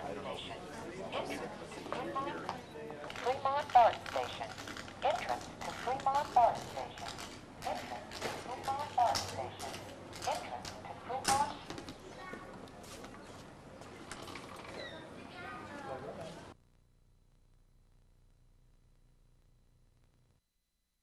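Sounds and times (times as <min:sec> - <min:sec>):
recorded voice through small speaker: 0:03.2 - 0:11.7.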